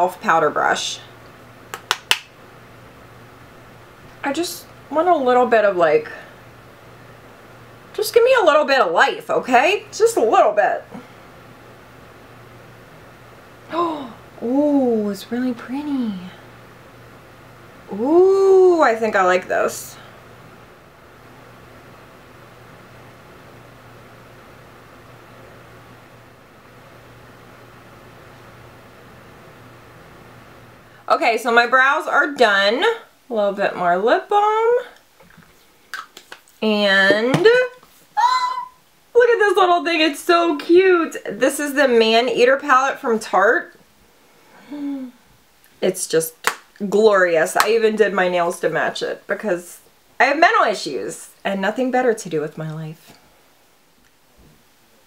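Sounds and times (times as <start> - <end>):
faint low hum: 0.0 - 55.0.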